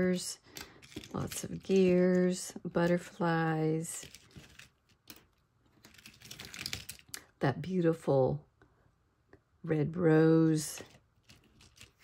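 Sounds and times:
chipboard pieces clicking and rustling: 0.5 - 3.1, 3.9 - 7.2, 10.8 - 12.0.

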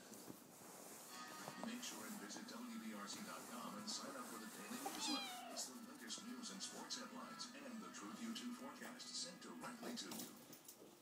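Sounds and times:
kitten meowing: 4.8 - 5.7.

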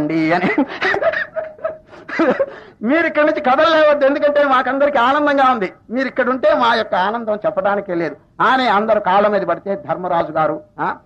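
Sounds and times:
man chuckling: 0.4 - 2.6.

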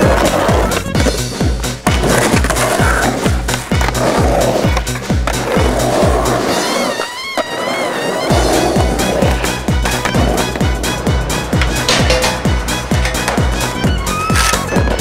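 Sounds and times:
skateboard wheels on concrete: 0.0 - 15.0.

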